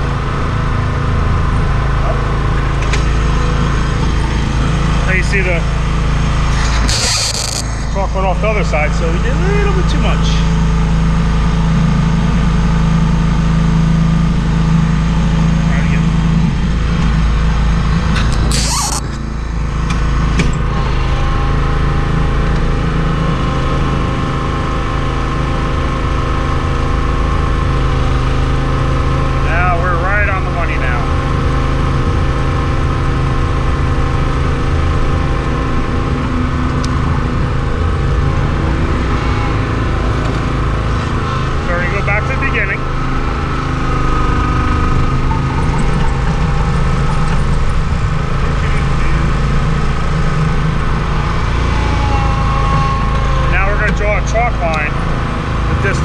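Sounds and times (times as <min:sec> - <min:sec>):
small gasoline engine running: 0:00.0 - 0:56.0.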